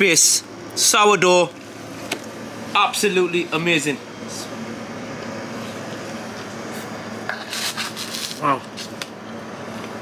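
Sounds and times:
low background hum with tone: 0:00.0 - 0:10.0.

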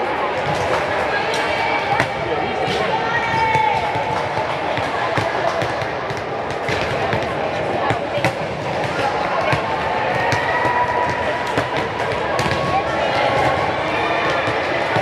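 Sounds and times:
echoing hubbub of voices: 0:00.0 - 0:15.0.

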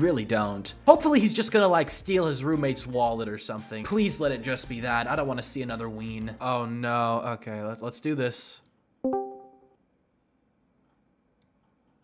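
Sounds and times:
bright electronic two-note chime: 0:09.1 - 0:09.8.

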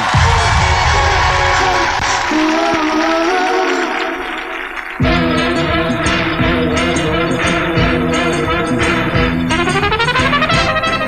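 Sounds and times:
sharp hit: 0:00.0 - 0:06.6
live band music: 0:00.0 - 0:11.0.

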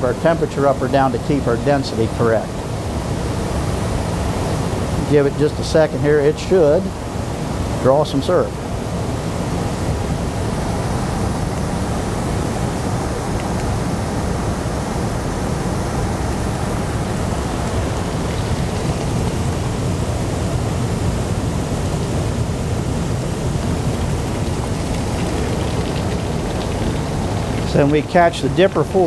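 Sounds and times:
sap evaporator rushing boil: 0:00.0 - 0:29.0.

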